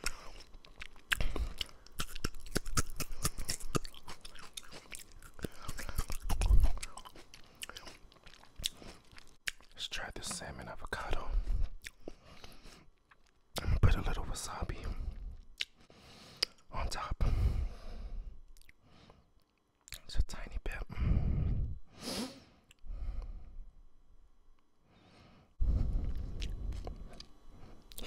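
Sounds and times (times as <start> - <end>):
person chewing food: 0.0 - 13.4, 15.1 - 16.6, 18.5 - 20.0, 25.9 - 28.0.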